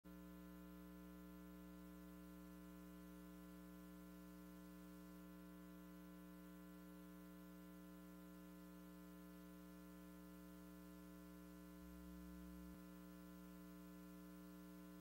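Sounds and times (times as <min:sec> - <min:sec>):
faint electrical mains hum: 0:00.1 - 0:15.0.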